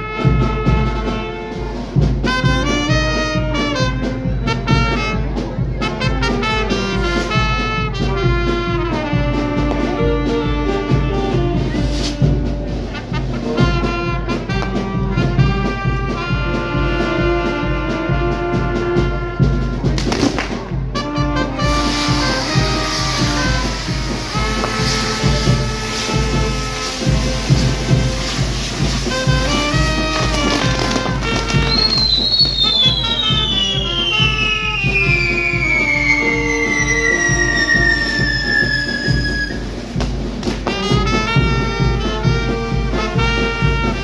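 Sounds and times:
brass band music: 0:00.0 - 0:44.0
long falling whistle: 0:31.4 - 0:39.7.

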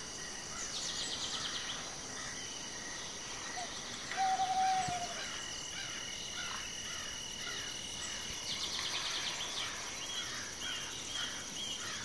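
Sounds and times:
bird hooting: 0:03.6 - 0:05.4.

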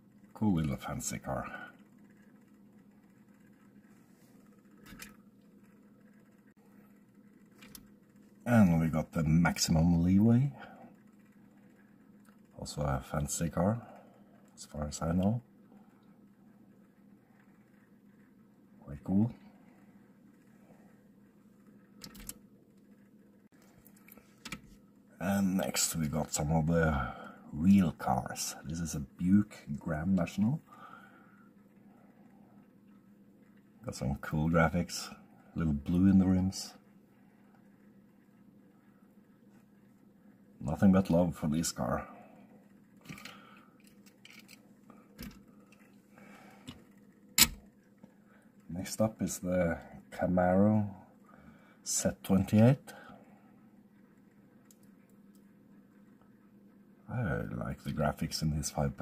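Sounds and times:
motorised turntable humming: 0:00.0 - 0:57.0
sharp click: 0:47.4 - 0:47.7.

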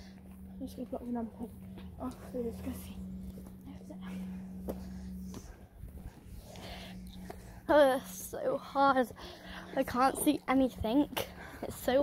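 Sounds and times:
footsteps on tarmac: 0:00.0 - 0:12.0
steady low hum: 0:00.0 - 0:12.0.

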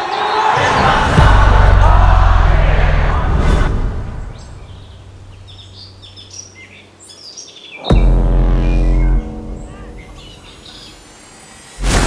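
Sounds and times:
deep bass hit music: 0:00.6 - 0:05.7, 0:07.9 - 0:11.1
birds chirping: 0:04.1 - 0:11.8.

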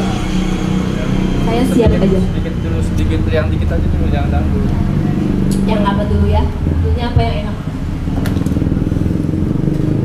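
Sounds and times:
motorcycle engine rumbling: 0:00.0 - 0:10.0.

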